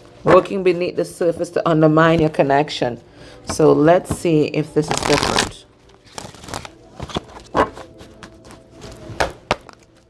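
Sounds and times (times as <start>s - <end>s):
cards being shuffled: 4.8s - 8.6s.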